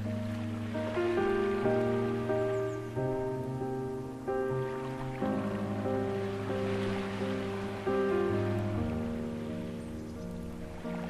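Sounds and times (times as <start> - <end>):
ocean waves washing in: 0.0 - 11.0
slow ambient piano music: 0.0 - 11.0.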